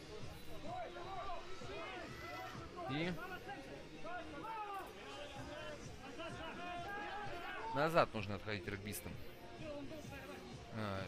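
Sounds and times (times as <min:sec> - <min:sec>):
babble of background voices: 0:00.0 - 0:11.0
players and onlookers shouting: 0:00.5 - 0:08.0.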